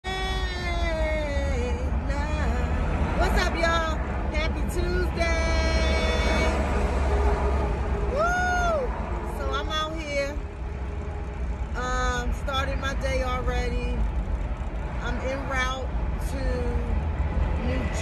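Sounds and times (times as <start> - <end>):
woman singing: 0.0 - 6.6, 11.8 - 14.0, 17.6 - 18.0
car cabin rumble: 0.0 - 18.0.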